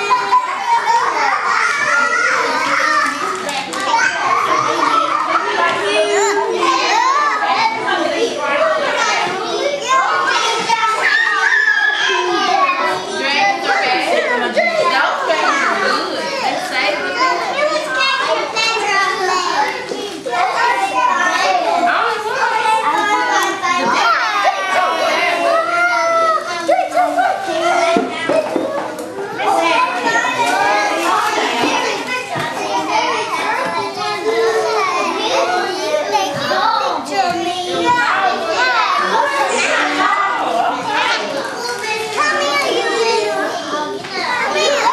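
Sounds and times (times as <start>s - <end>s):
young children talking over one another: 0.0s - 44.9s.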